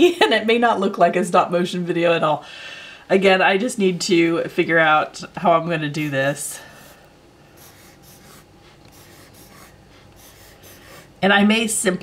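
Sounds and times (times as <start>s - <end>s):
pencil scratching on paper: 7.6s - 11.1s.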